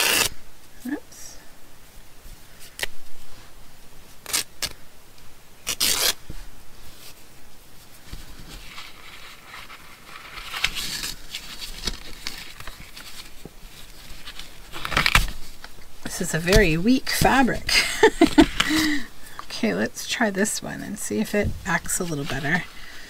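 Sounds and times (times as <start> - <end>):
fabric rustling against card: 5.7 - 23.0.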